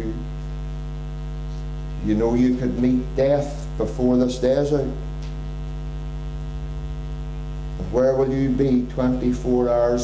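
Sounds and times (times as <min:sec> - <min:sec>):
electrical mains hum: 0:00.0 - 0:10.0
man talking: 0:02.0 - 0:05.0, 0:07.8 - 0:10.0.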